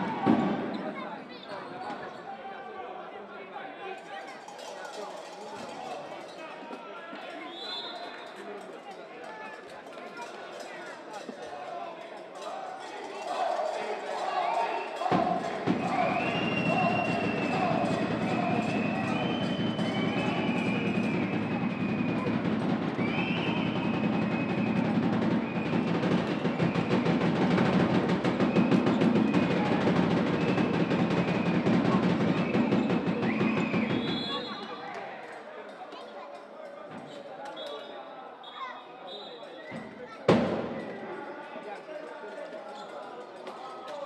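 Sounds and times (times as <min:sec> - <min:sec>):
loud drumming and percussion: 0:00.0 - 0:00.8, 0:12.4 - 0:34.5, 0:40.3 - 0:41.1
voices: 0:00.0 - 0:44.0.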